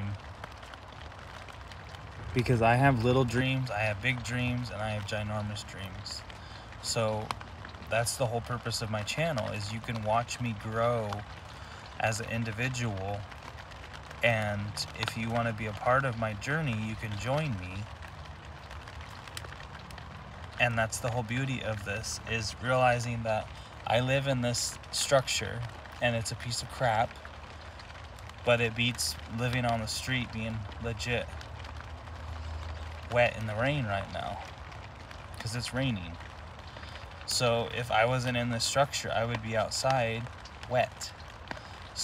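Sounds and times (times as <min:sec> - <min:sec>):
rain on tent roof: 0:00.0 - 0:42.0.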